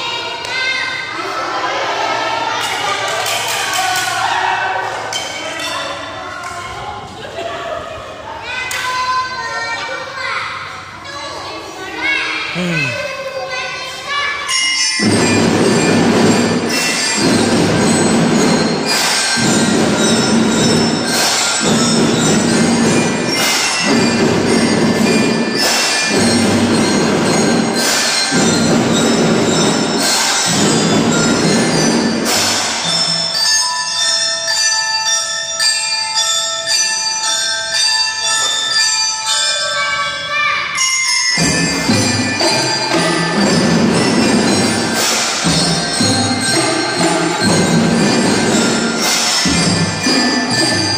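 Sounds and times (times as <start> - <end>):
bell-like mallet melody: 14.3 - 50.9
drums and cymbals: 14.8 - 33.6, 41.4 - 50.9.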